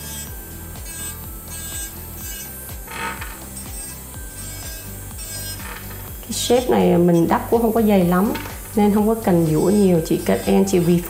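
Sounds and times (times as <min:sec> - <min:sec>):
background music with steady beat: 0:00.0 - 0:11.0
nail drill grinding acrylic nail: 0:00.0 - 0:11.0.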